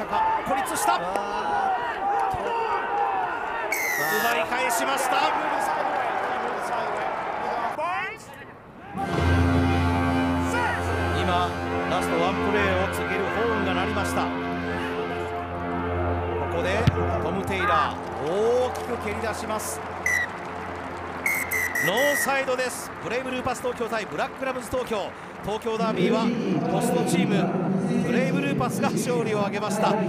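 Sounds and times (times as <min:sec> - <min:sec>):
referee's whistle blasts: 0:03.7 - 0:04.4, 0:20.1 - 0:20.3, 0:21.2 - 0:22.4.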